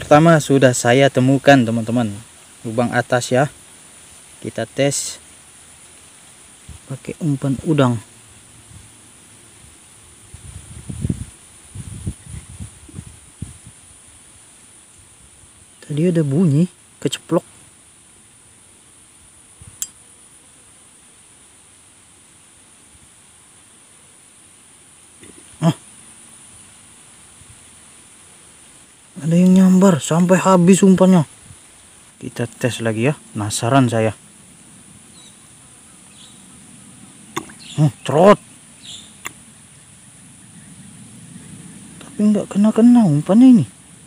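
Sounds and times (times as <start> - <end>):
insect chorus: 0.0 - 44.0
small click: 39.2 - 39.4.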